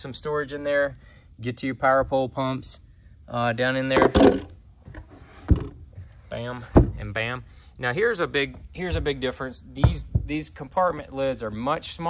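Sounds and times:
lid closing with dull thud: 3.9 - 5.8.

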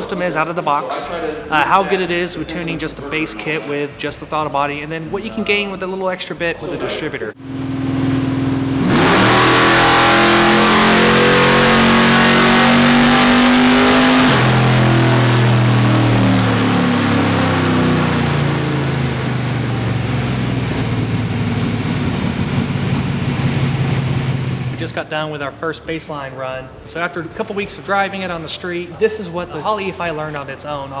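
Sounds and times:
engine revving on a dyno: 7.4 - 24.8.

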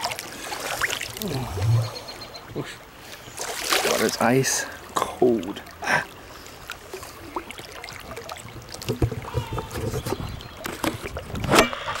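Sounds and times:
river water splashing: 0.0 - 12.0
small knocks: 8.6 - 11.0.

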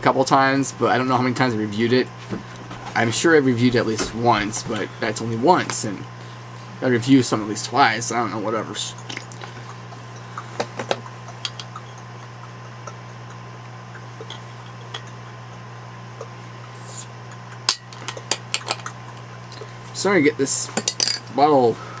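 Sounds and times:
electrical hum: 0.0 - 22.0
glass bottle clinking: 17.7 - 19.0, 20.8 - 21.3.

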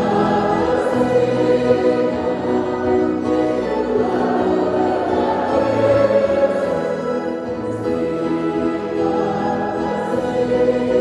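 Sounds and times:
church organ chords: 0.0 - 11.0
congregation and choir singing hymn: 0.0 - 11.0.

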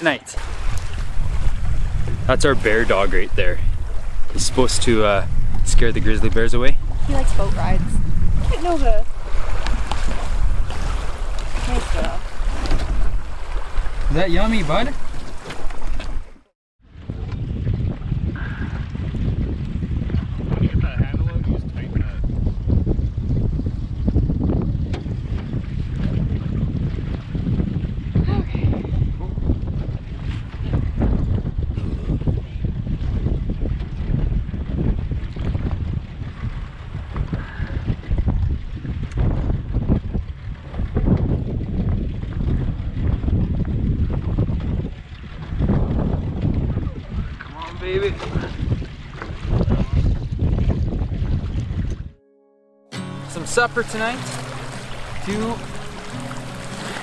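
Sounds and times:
waves lapping at hull: 0.0 - 22.2, 24.8 - 52.0, 53.0 - 57.0
wind buffeting microphone: 0.4 - 52.2, 53.4 - 57.0.

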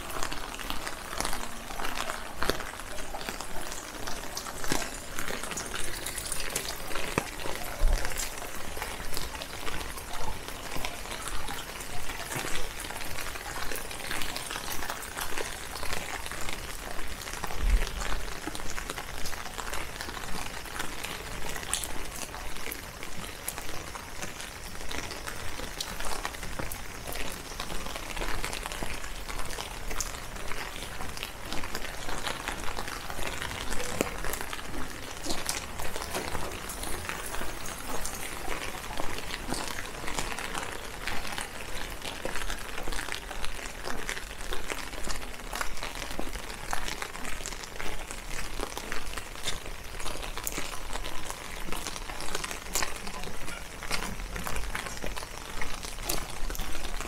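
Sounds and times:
footsteps on wet pavement: 0.0 - 57.0
rain pattering: 0.0 - 57.0.

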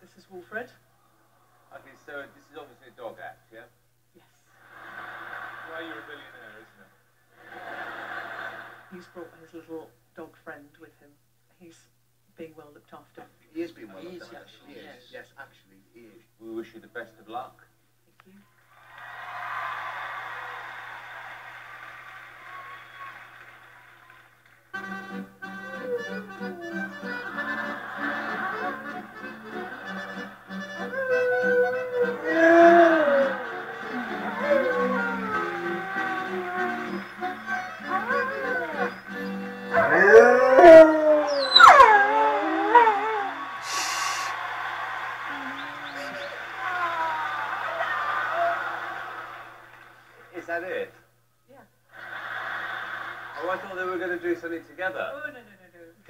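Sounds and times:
audience applauding and cheering: 18.6 - 25.3, 25.9 - 50.3
music: 24.8 - 39.9
husky howling: 25.5 - 28.7, 30.7 - 43.8.

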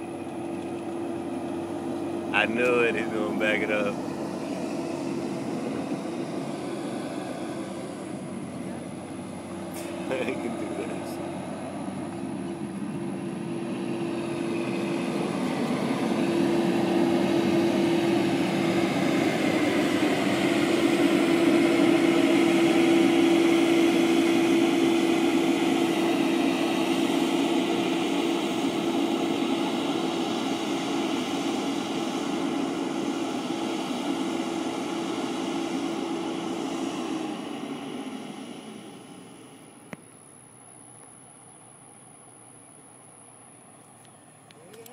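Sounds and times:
diesel truck engine droning: 0.0 - 44.9.

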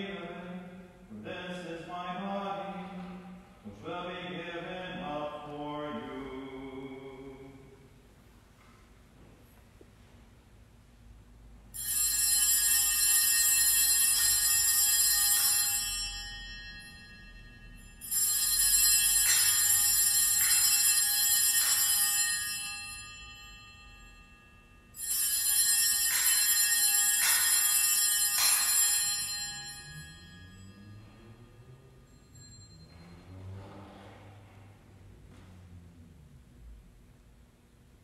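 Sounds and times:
altar bells ringing: 11.8 - 33.7.

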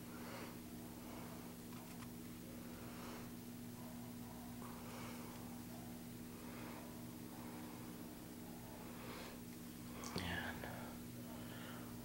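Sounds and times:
low steady hum: 0.0 - 12.0
faint breathy whisper: 6.4 - 12.0.

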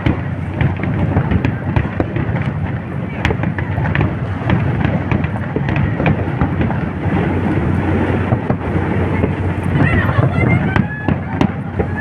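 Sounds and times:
fireworks crackling rumble: 0.0 - 12.0
fireworks sharp bangs: 0.0 - 12.0.

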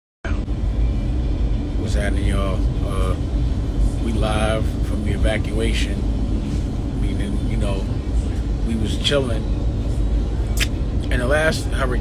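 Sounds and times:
van engine and road noise: 0.2 - 12.0.

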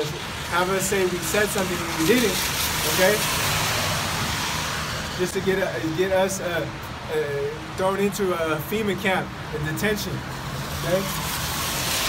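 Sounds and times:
car tyres hissing on wet road: 0.0 - 5.7, 10.3 - 12.0.

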